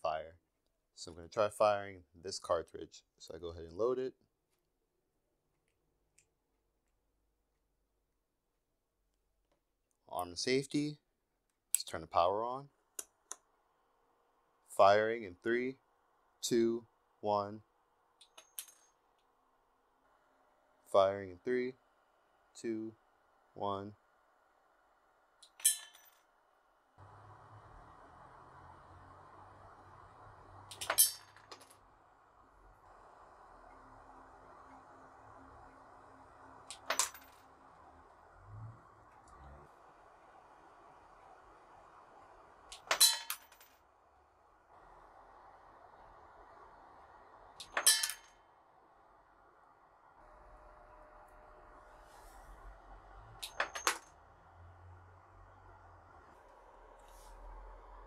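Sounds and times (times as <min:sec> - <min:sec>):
faint steady hiss: 0:26.9 - 0:58.0.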